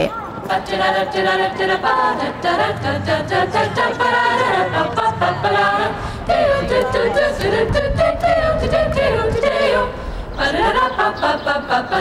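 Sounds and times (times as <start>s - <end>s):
group singing a cappella: 0.5s - 12.0s.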